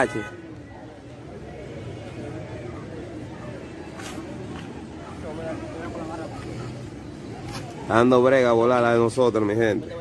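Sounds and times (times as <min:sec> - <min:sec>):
people talking in background: 0:00.0 - 0:10.0.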